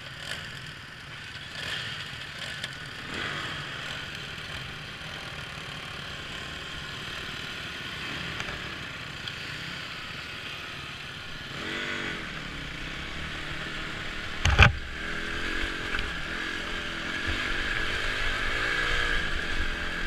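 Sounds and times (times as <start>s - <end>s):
dirt bike engines running: 0.0s - 20.0s
engine revving: 1.5s - 10.6s, 11.2s - 20.0s.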